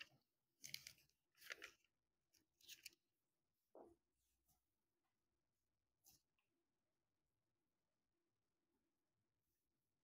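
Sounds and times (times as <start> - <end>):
pages turning: 0.0 - 3.2.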